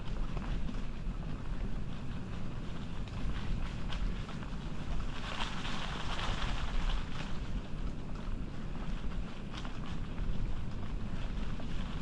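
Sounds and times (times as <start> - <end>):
tyres crackling over dry leaves: 0.0 - 12.0
wind buffeting microphone: 0.0 - 12.0.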